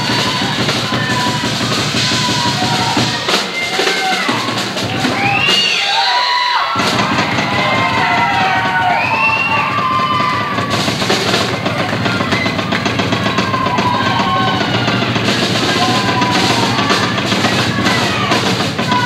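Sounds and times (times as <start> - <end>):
drum kit solo: 0.0 - 19.0.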